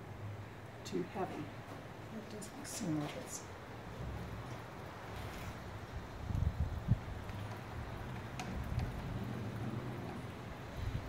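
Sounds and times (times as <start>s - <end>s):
etching press rumbling: 3.6s - 11.0s.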